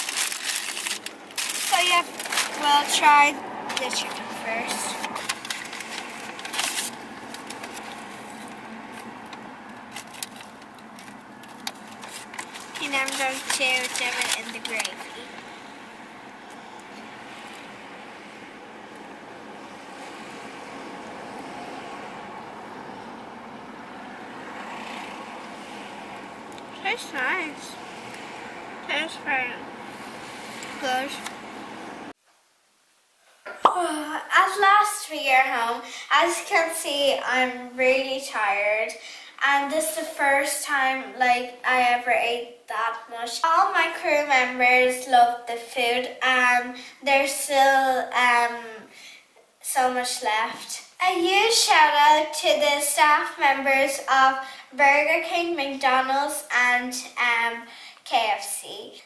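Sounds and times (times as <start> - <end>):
paper bag crinkling: 0.0 - 3.0, 3.8 - 9.1, 9.8 - 15.3
light crackles: 0.0 - 18.3
girl speaking: 1.6 - 5.1, 12.7 - 15.4, 26.7 - 27.8, 28.9 - 29.6, 30.8 - 31.3, 33.6 - 48.9, 49.6 - 59.0.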